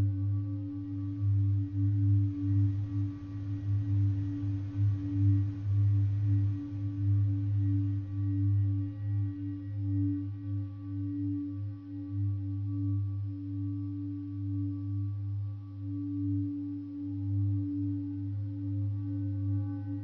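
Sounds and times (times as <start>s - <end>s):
ambient drone music: 0.0s - 20.0s.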